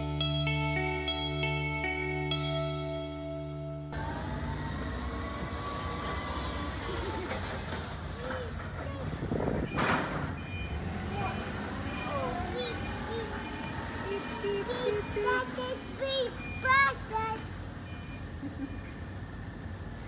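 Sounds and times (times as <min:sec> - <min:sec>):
train low rumble: 0:00.0 - 0:20.0.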